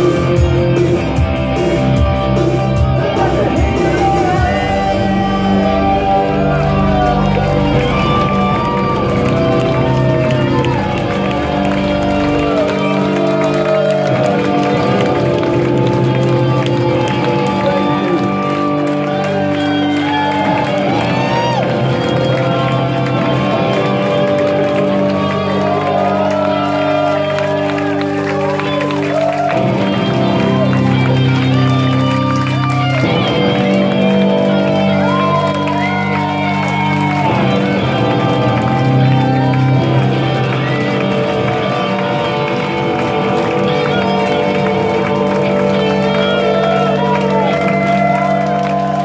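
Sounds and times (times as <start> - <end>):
live rock band playing: 0.0 - 49.0.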